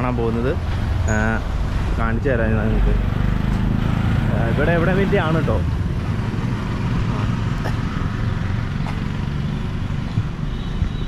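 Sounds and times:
road traffic rumble: 0:00.0 - 0:11.0
motorcycle passing: 0:00.7 - 0:10.5.

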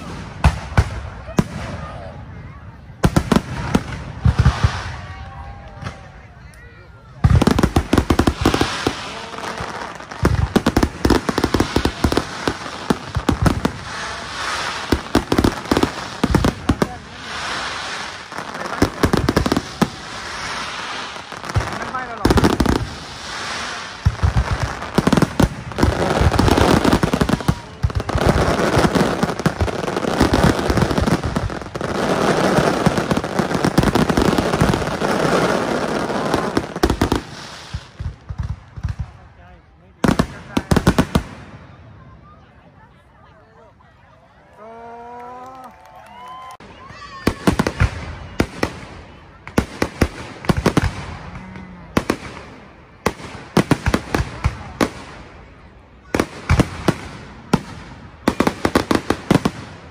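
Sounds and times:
fireworks crackling: 0:00.0 - 0:59.9.

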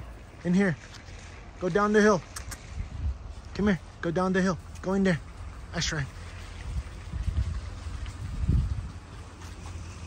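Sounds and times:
wind buffeting microphone: 0:00.0 - 0:04.0, 0:04.6 - 0:10.0.

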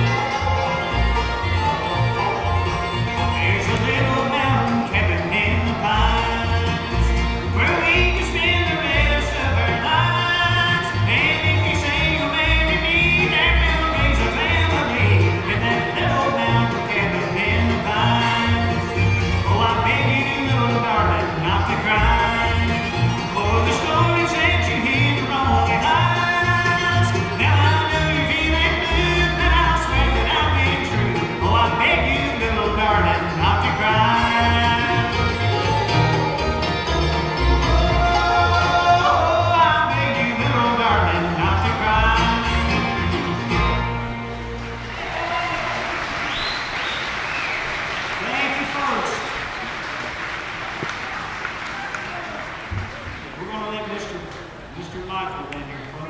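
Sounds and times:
fiddle: 0:00.0 - 0:45.8
bluegrass band playing: 0:00.0 - 0:56.0
audience applause: 0:44.4 - 0:54.7.

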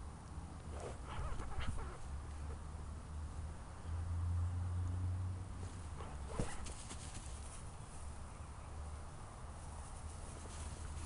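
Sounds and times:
puppy whining: 0:01.0 - 0:02.1.

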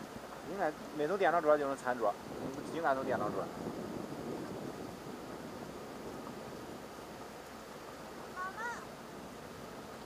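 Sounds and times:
water rushing past boat: 0:00.0 - 0:10.0
wind rushing: 0:02.0 - 0:07.0.

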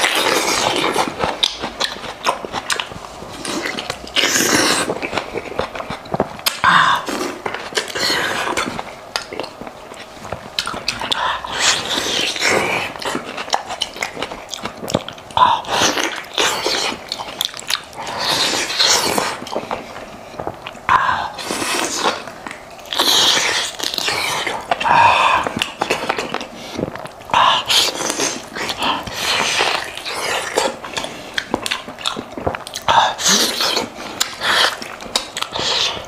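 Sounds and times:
biting and chewing meat: 0:00.0 - 0:36.0.

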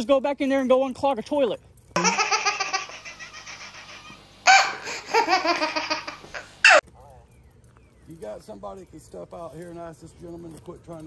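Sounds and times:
baby laughing: 0:02.0 - 0:06.8.

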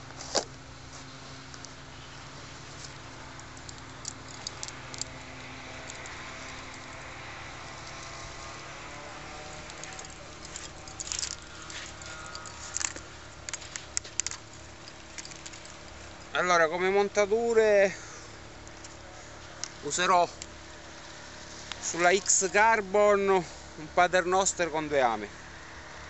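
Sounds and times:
pebbles clicking and rattling: 0:09.4 - 0:16.3.

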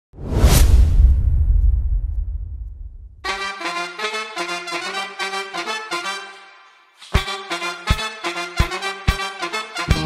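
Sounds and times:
deep rumble: 0:00.2 - 0:03.2
whoosh sound effect: 0:00.2 - 0:03.2.

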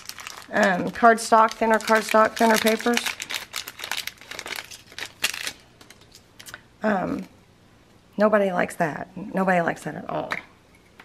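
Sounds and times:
plastic packaging crinkling: 0:00.0 - 0:06.6.

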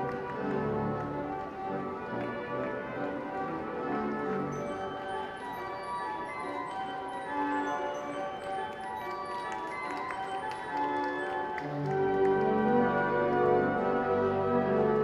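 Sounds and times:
pipe organ sustained chords: 0:00.0 - 0:15.0.

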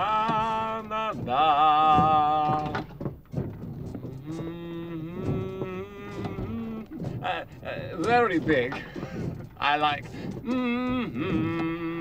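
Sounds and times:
person making moo-like calls: 0:04.2 - 0:07.8, 0:10.4 - 0:12.0.

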